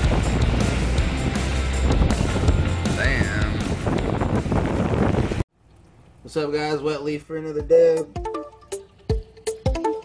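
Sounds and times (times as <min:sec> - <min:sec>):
wind buffeting microphone: 0:00.0 - 0:05.5.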